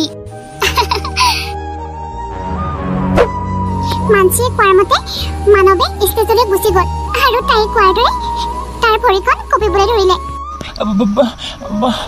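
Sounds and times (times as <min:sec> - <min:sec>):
background music: 0:00.0 - 0:12.0
high-pitched cartoon voice giggling: 0:00.6 - 0:01.3.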